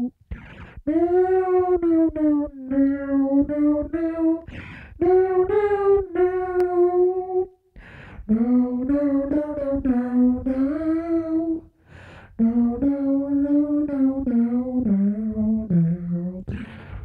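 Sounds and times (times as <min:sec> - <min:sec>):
short breath: 0:00.3 - 0:00.8, 0:04.5 - 0:05.0, 0:07.8 - 0:08.3, 0:11.8 - 0:12.4, 0:16.5 - 0:17.0
man humming into microphone: 0:12.4 - 0:17.0.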